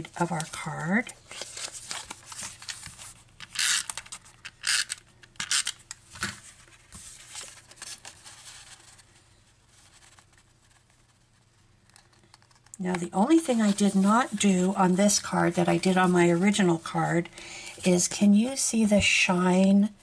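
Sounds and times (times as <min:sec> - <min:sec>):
paper scraping and rustling: 0:00.3 - 0:04.3, 0:06.2 - 0:11.3, 0:13.2 - 0:17.0.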